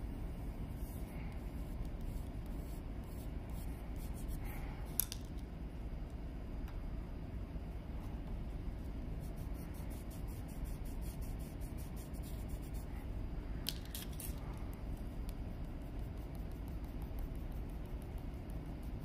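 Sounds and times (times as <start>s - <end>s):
steady low rumble: 0.0s - 13.7s
pencils scratching on paper: 9.2s - 12.9s, 15.6s - 19.0s.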